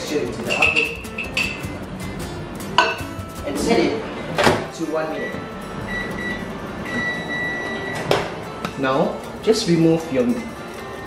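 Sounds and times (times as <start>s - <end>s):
background music: 0.0s - 11.0s
ceramic mug clinking: 2.8s - 3.0s.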